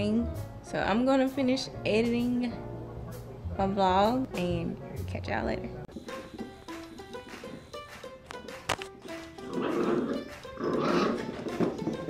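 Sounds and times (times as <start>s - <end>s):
plucked-string background music: 0.0s - 12.0s
animal growls: 9.5s - 11.7s.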